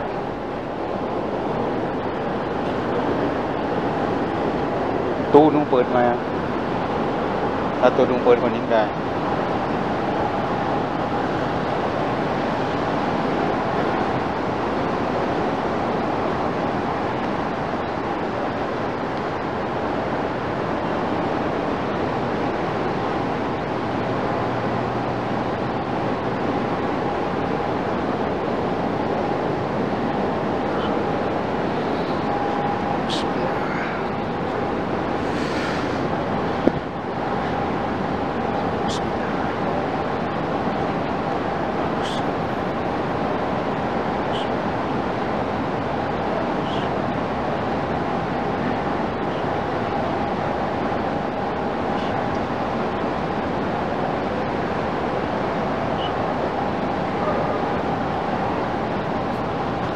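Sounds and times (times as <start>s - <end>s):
faint steady hum: 0.0s - 59.9s
rushing room noise: 0.0s - 59.9s.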